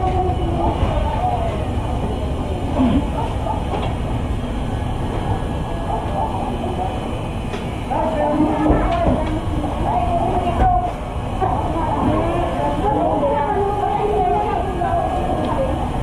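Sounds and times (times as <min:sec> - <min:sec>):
indistinct voices: 0:00.0 - 0:16.0.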